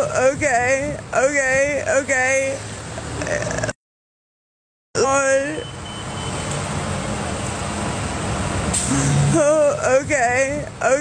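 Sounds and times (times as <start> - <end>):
street traffic rushing: 0.0 - 3.8, 5.0 - 11.0
short vocal sound: 3.2 - 3.8.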